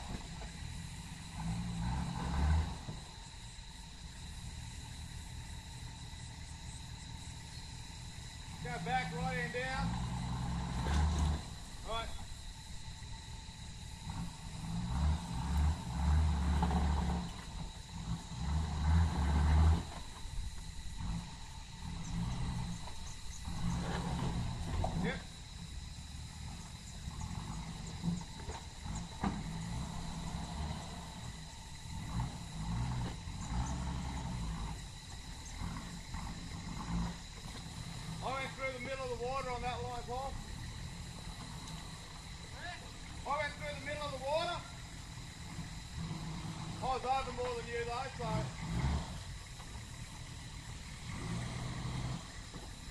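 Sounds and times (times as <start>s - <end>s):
off-road vehicle engine revving: 0.0s - 52.9s.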